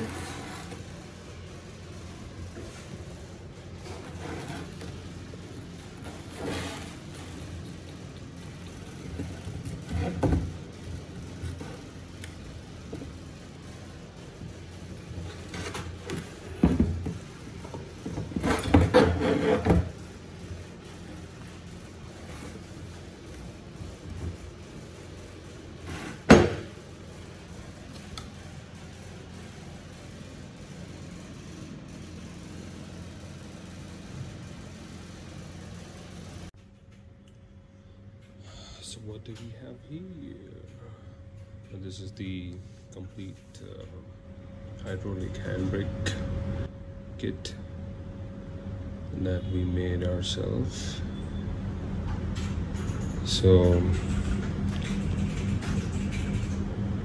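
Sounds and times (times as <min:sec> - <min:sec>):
metal rattling scrape: 0:00.0 - 0:01.0, 0:03.8 - 0:05.1, 0:05.7 - 0:07.8, 0:18.2 - 0:19.9.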